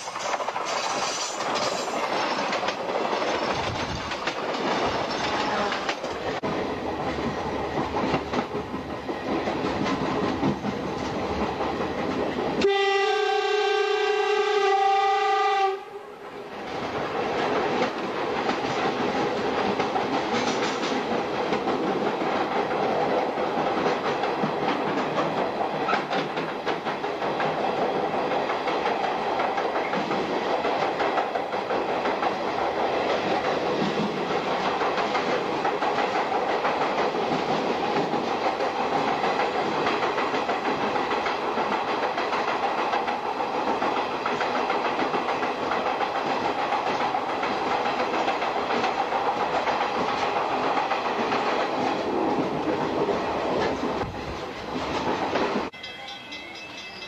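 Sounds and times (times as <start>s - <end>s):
train wheels rolling on rails: 0.0s - 57.0s.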